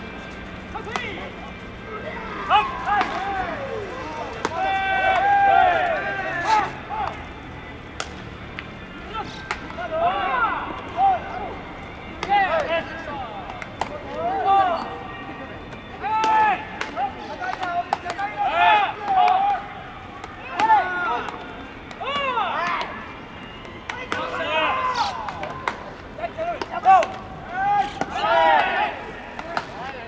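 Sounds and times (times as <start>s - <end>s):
players shouting calls: 0.0s - 30.0s
ball hitting leather glove: 7.9s - 8.2s.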